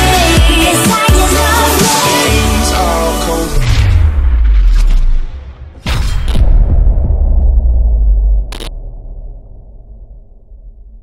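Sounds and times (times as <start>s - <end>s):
deep cinematic boom rumbling: 3.6s - 11.0s.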